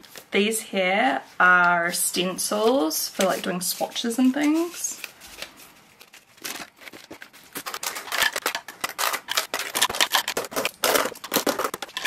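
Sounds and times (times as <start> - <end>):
metal clips clattering into plastic: 7.7 - 12.0.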